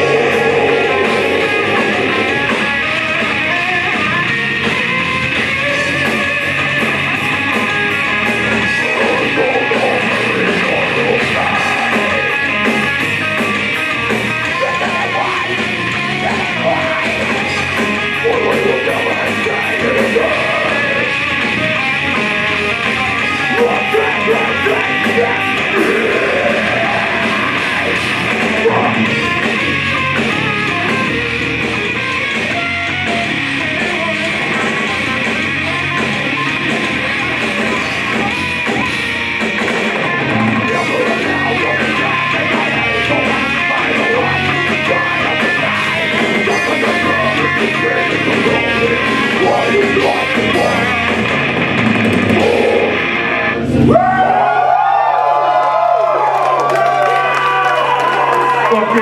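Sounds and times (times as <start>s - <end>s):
bass: 0.0s - 59.0s
death metal band playing: 0.0s - 59.0s
drums: 0.0s - 59.0s
electric guitar riffing: 0.0s - 59.0s
crowd cheering and whooping: 53.7s - 59.0s.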